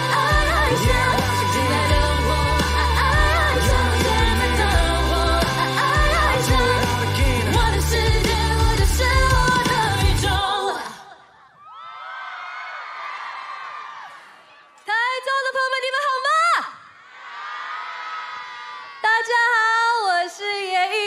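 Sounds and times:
woman singing: 0.0s - 11.3s, 14.9s - 16.8s, 19.0s - 21.0s
crowd cheering and screaming: 11.2s - 14.9s, 16.8s - 19.4s.

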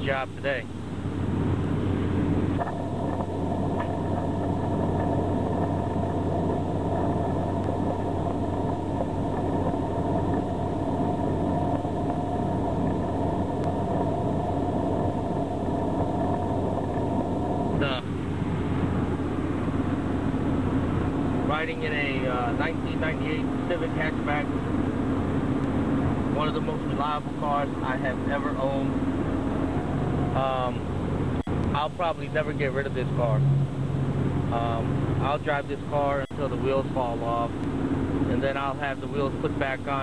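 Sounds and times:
road and engine noise in car cabin: 0.0s - 40.0s
steady multi-tone whine: 0.0s - 40.0s.

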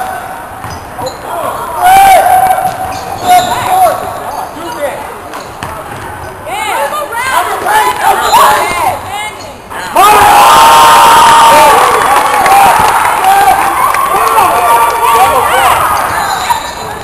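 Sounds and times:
sneakers squeaking on hardwood: 0.6s - 1.2s
basketball bouncing: 5.6s - 6.2s
people shouting and calling: 9.8s - 16.8s.

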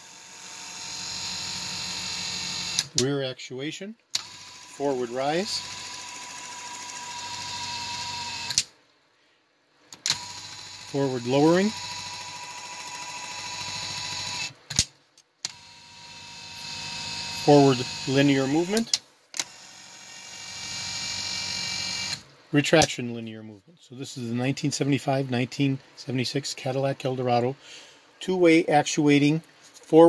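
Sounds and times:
electric seat motor running: 0.0s - 2.9s, 4.2s - 8.6s, 10.1s - 14.5s, 15.5s - 18.8s, 19.4s - 22.2s
electric motor whining: 15.5s - 22.2s.

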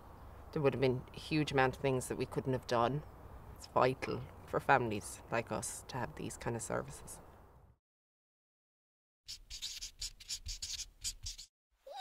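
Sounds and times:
pen scratching on paper: 9.3s - 11.5s.

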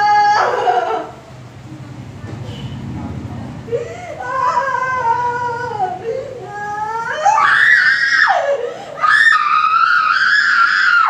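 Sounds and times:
woman screaming: 3.8s - 11.0s.

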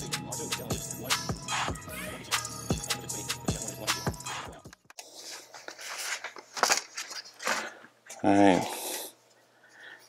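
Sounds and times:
background music: 0.0s - 4.9s.

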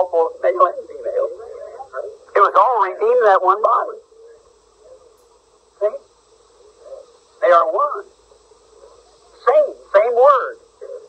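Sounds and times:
recording hum and hiss: 0.0s - 11.0s.

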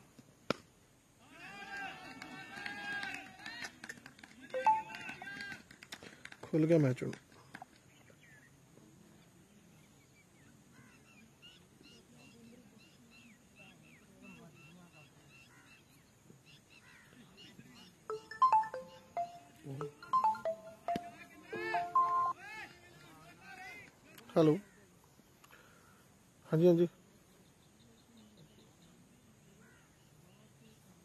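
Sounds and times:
phone ringtone melody: 4.6s - 5.2s, 18.1s - 22.4s.

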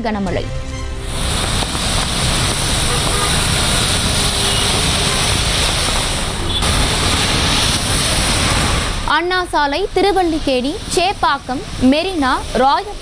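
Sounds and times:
traffic on wet road: 0.7s - 13.0s
heavy rain: 1.0s - 13.0s.

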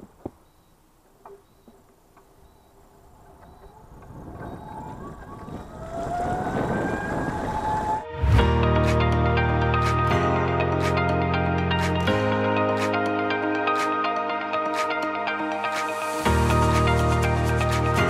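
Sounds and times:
tyre road noise: 0.0s - 8.5s
electric motor whining: 3.7s - 8.2s.

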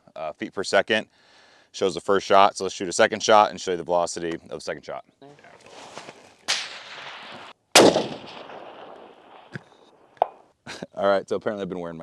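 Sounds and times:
quieter sharp report: 5.7s - 10.4s
rifle shot with echo: 6.5s - 10.4s.

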